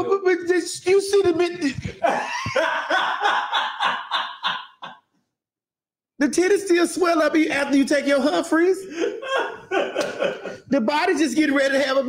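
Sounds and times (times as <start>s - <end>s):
person laughing: 1.6s - 5.0s, 8.8s - 10.7s.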